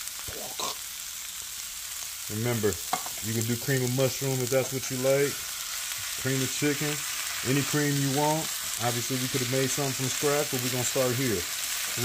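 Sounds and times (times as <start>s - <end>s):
food sizzling in a skillet: 0.0s - 12.0s.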